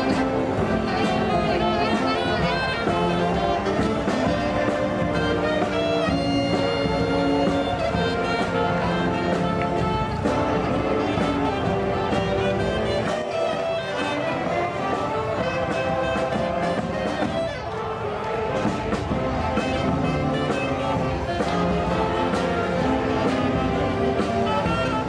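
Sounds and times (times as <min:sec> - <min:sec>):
accordions: 0:00.0 - 0:25.0
saxophones: 0:00.0 - 0:25.0
string band playing live: 0:00.0 - 0:25.0.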